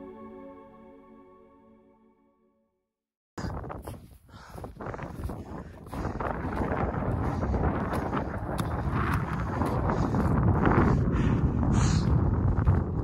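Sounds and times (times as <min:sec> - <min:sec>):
wind buffeting microphone: 0:03.4 - 0:13.0.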